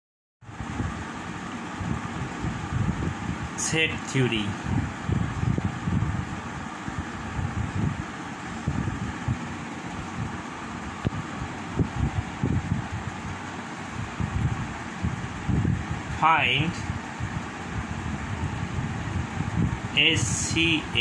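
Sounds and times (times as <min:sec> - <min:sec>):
steady background hiss: 0:00.5 - 0:05.1, 0:08.0 - 0:21.0.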